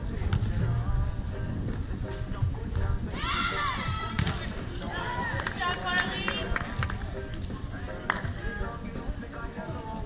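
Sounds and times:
wind rumble on microphone: 0.0 - 10.0
people shouting and calling: 3.1 - 6.5.

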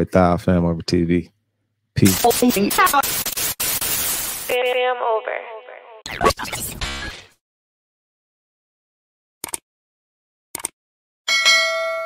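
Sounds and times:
metallic bell-like clang: 11.3 - 12.0.

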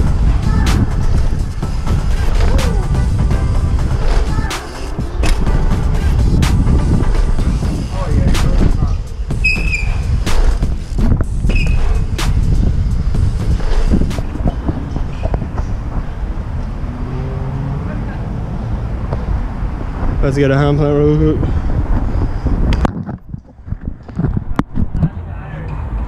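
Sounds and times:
wind on microphone: 0.0 - 25.3
brief squeaks: 9.4 - 10.0, 11.5 - 12.0.

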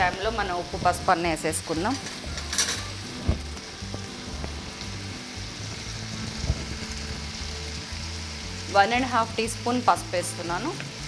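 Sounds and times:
onions and tomatoes frying sizzle: 0.0 - 11.0.

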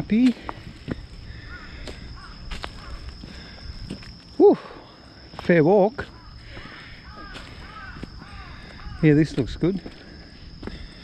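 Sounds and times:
footsteps on dry leaves: 0.0 - 4.4, 5.3 - 11.0
crow cawing: 1.2 - 3.6, 6.0 - 9.3.

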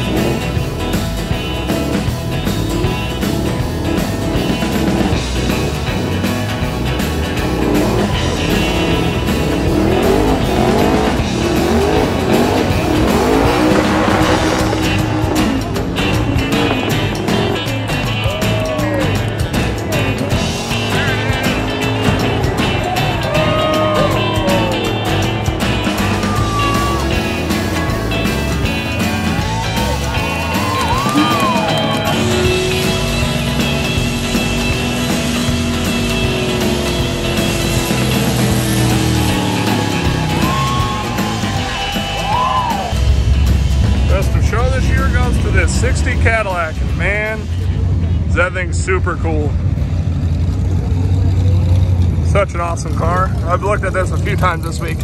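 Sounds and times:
car engine revving hard: 0.0 - 42.2
rock music over loudspeakers: 0.0 - 50.0
tyres squealing on pavement: 20.4 - 27.6, 29.2 - 43.0.

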